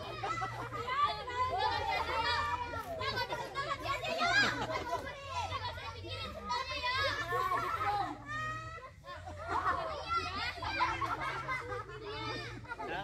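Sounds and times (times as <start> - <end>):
children talking and calling out: 0.0 - 13.0.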